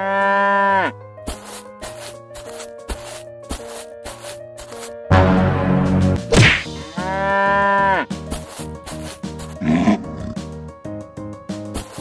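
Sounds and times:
cow mooing: 0:00.0 - 0:01.0, 0:07.0 - 0:08.1, 0:09.6 - 0:10.4
background music: 0:00.1 - 0:12.0
loud rough growl: 0:09.6 - 0:10.4
short tiger roar: 0:09.6 - 0:10.4.

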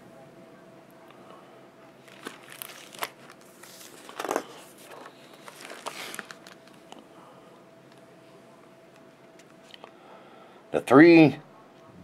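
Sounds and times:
paper pages rustling: 0:02.0 - 0:06.9.

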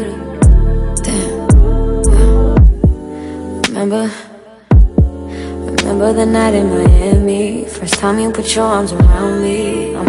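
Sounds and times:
sustained synth chords: 0:00.0 - 0:03.6.

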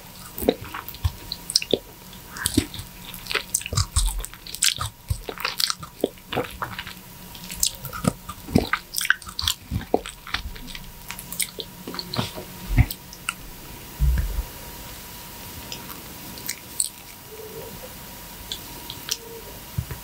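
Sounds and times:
wet chewing and smacking: 0:00.0 - 0:14.4.

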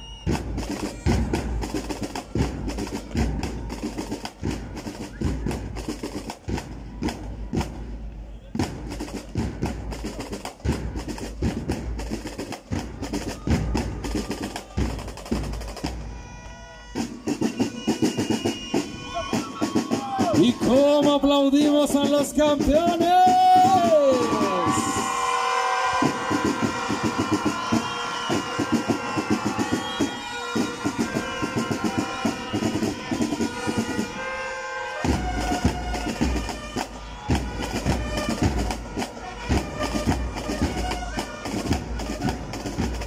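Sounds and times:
snare drum rolls: 0:00.0 - 0:16.2, 0:17.0 - 0:43.0.

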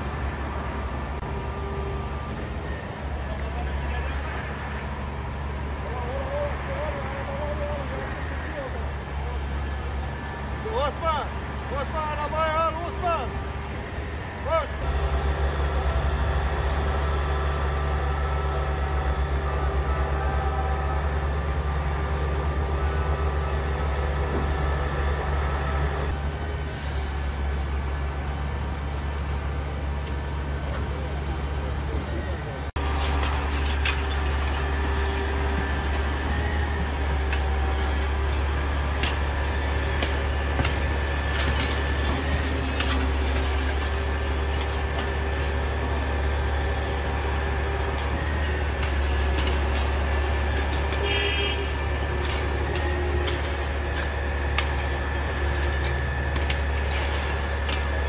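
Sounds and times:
diesel engine idling: 0:00.0 - 0:58.0.

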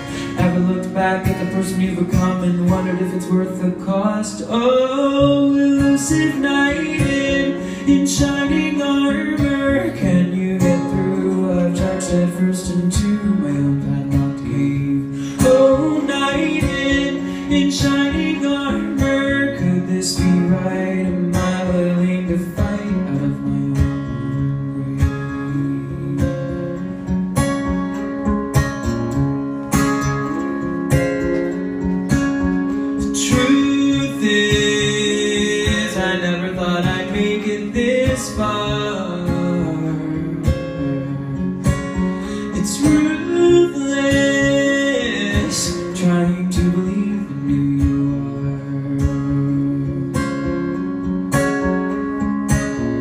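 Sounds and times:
man singing: 0:00.0 - 0:27.0, 0:32.8 - 0:50.8
acoustic guitar strumming: 0:00.0 - 0:53.0.

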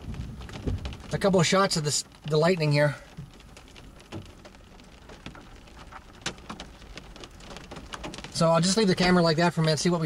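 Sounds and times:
rain on car roof: 0:00.0 - 0:10.0.

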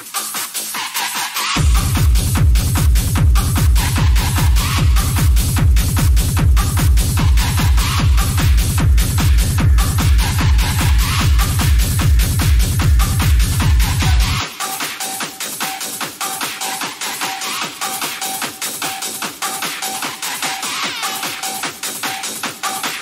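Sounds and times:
driving kick drum and bass: 0:00.0 - 0:23.0
techno music: 0:00.0 - 0:23.0.

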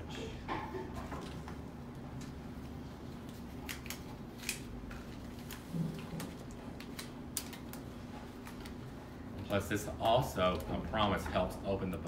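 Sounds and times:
steady low hum: 0:00.0 - 0:12.0
leaves snapping off stems: 0:03.6 - 0:04.7.

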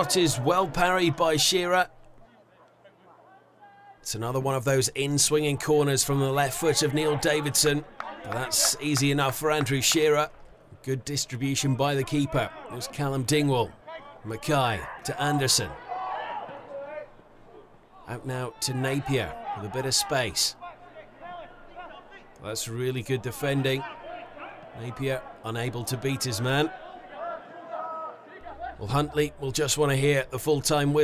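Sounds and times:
distant voices shouting: 0:13.6 - 0:22.4, 0:23.1 - 0:29.4
low steady hum: 0:28.4 - 0:31.0.

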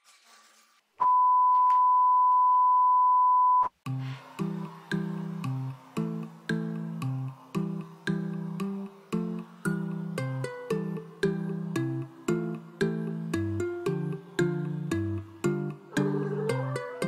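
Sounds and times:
electronic beep: 0:01.0 - 0:03.7.

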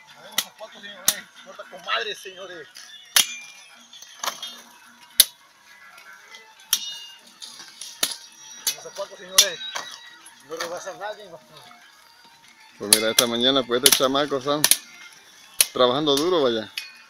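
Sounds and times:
machete chopping sugarcane: 0:03.2 - 0:03.4, 0:12.9 - 0:14.9.

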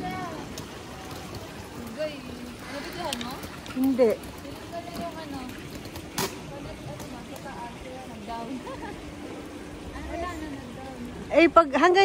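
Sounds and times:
faint voices of passers-by: 0:00.0 - 0:12.0.

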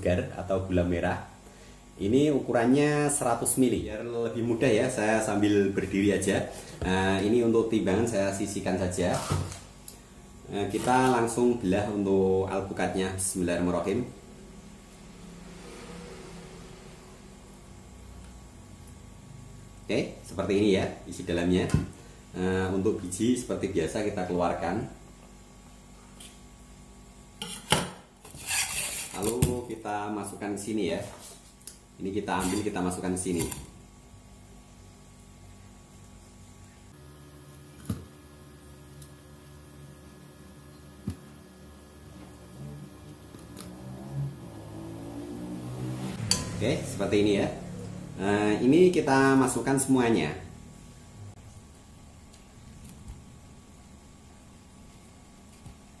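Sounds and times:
faint room hum: 0:00.0 - 0:56.0.

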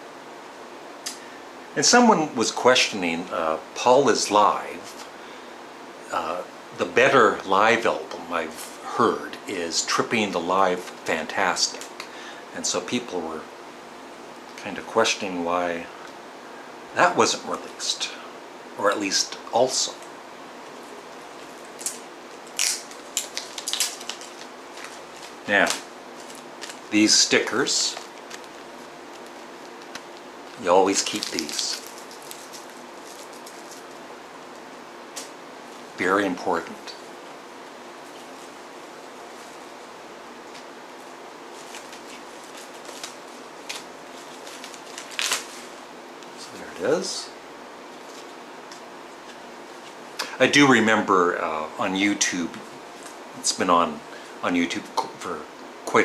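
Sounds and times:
room hum: 0:00.0 - 0:56.0
plastic crinkling rustle: 0:20.7 - 0:35.9, 0:38.0 - 0:46.4, 0:47.9 - 0:50.0
packaging crackle: 0:21.4 - 0:34.0, 0:41.5 - 0:45.8.

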